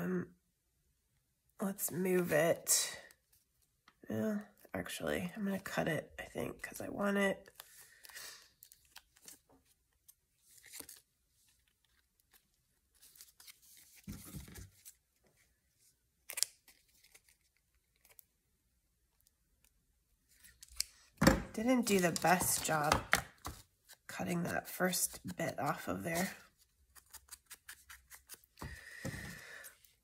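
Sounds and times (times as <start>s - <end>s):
paper rustling: 7.5s - 15.4s, 21.8s - 29.6s.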